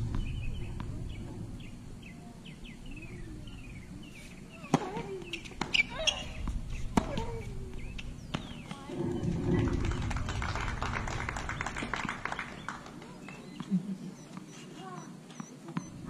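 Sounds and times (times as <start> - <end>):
spectators applauding: 9.6 - 13.4.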